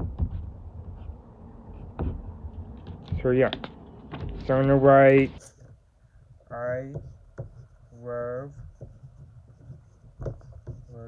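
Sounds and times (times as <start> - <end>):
pen scratching on paper: 6.6 - 11.0.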